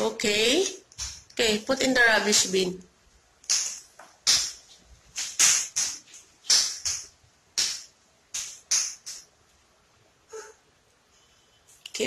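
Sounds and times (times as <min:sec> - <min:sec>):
footsteps on tiled floor: 0:01.0 - 0:01.3.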